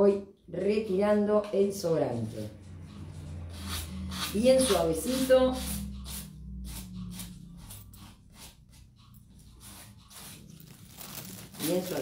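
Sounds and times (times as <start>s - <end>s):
sanding pad scratching paper: 3.5s - 8.8s, 9.4s - 10.7s.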